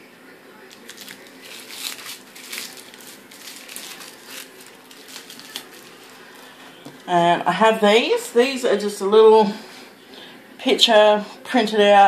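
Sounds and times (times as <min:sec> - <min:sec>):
laminated paper crinkling: 0:00.6 - 0:07.2.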